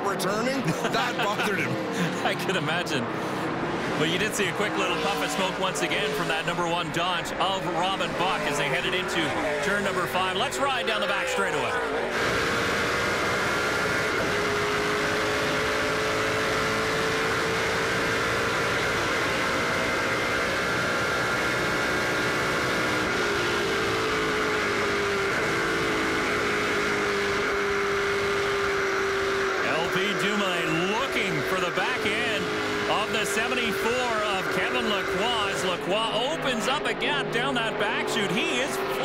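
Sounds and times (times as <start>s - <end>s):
race car engine at full throttle: 0.0s - 39.0s.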